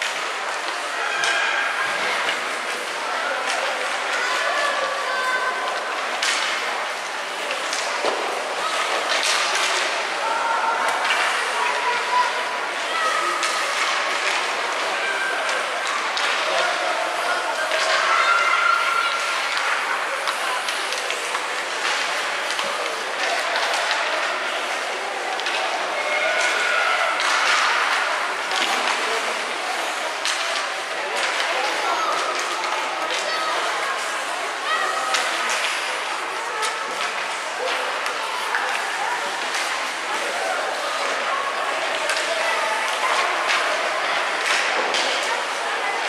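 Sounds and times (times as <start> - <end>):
hockey sticks and puck clicking: 0.0 - 4.5, 5.6 - 34.3, 35.0 - 46.0.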